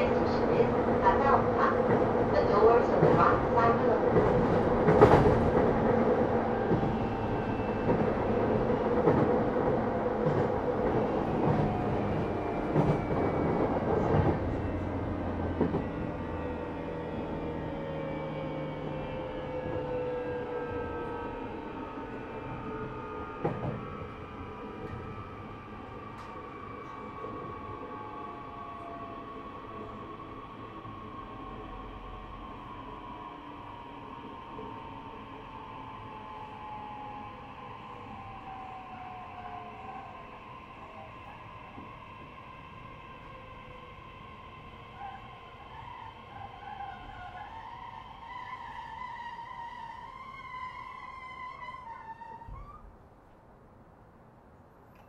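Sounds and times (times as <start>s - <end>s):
train rumbling running noise: 0.0s - 55.0s.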